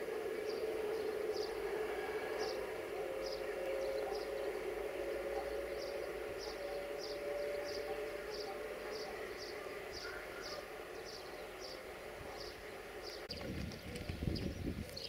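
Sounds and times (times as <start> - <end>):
faint steady tone: 0.0 - 13.1
electric locomotives humming: 0.0 - 15.0.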